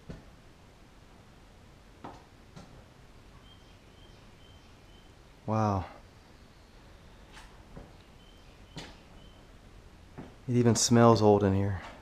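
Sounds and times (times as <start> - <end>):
bird chirping faintly: 3.2 - 9.7.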